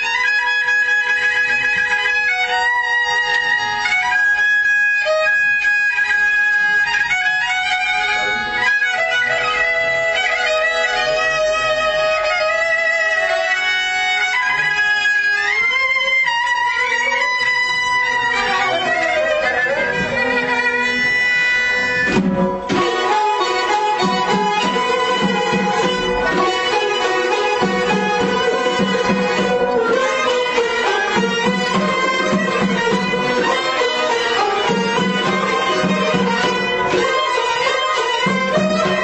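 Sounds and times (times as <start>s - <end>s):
bowed fiddle melody: 0.0s - 39.0s.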